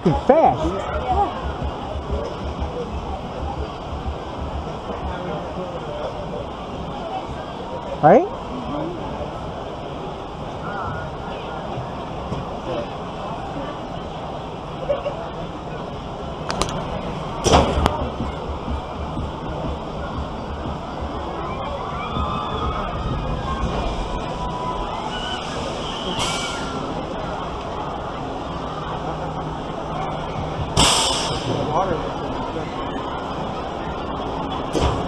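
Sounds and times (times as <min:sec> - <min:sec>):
low rumble of wind on microphone: 0:00.0 - 0:35.0.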